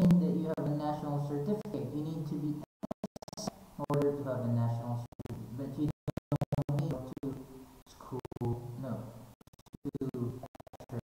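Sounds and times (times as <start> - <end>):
microphone static crackling: 0.0 - 11.0.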